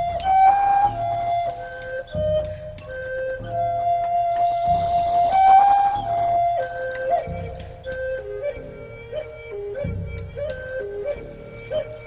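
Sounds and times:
flute playing slow melody: 0:00.0 - 0:12.0
low drum beat: 0:00.0 - 0:12.0
soft high hiss: 0:00.0 - 0:12.0.

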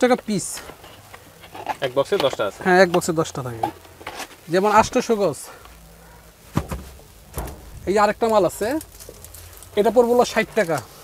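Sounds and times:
man talking: 0:07.6 - 0:09.1, 0:09.7 - 0:11.0.

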